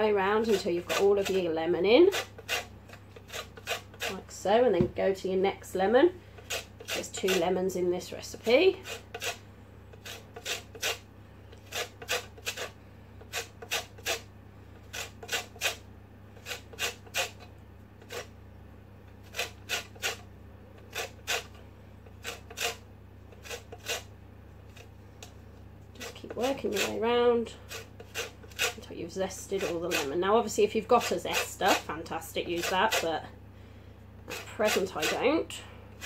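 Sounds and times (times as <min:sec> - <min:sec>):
grater scraping strokes: 0:00.2 - 0:04.5, 0:05.7 - 0:18.3, 0:19.1 - 0:33.2, 0:34.2 - 0:36.0.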